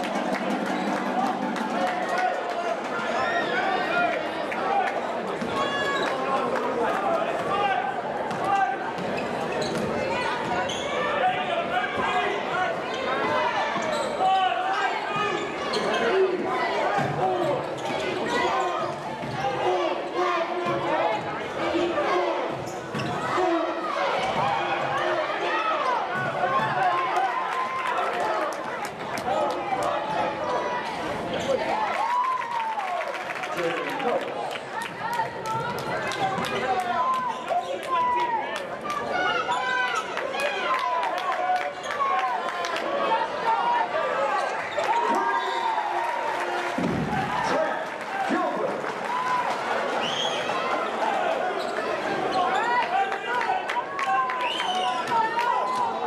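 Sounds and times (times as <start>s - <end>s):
crowd voices and shouts: 0.0s - 56.0s.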